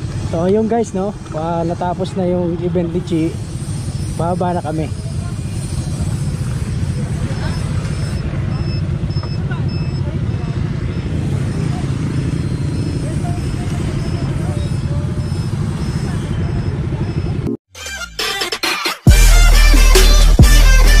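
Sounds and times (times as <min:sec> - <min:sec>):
motorcycle engine idling: 0:00.0 - 0:17.5
faint high beep: 0:06.8 - 0:17.6.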